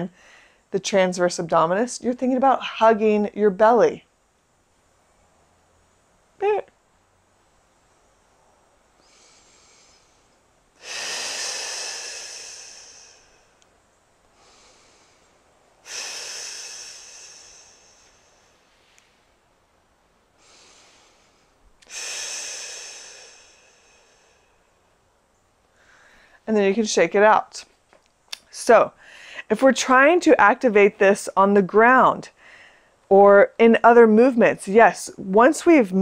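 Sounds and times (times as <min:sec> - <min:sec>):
woman breathing: 0:00.1 - 0:00.7, 0:08.1 - 0:19.3, 0:20.3 - 0:25.0, 0:25.7 - 0:26.5, 0:29.0 - 0:29.5, 0:32.3 - 0:33.1.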